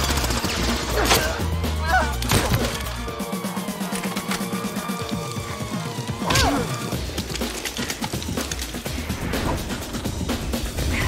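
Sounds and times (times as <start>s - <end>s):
dramatic film score music: 0.0s - 11.0s.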